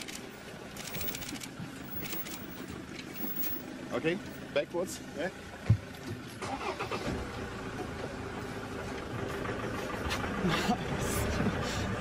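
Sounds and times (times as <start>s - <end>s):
vehicle engine rumbling: 0.0s - 12.0s.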